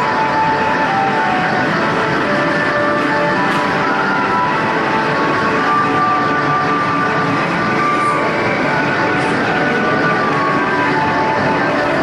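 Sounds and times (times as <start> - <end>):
arcade machines electronic tones: 0.0 - 12.0.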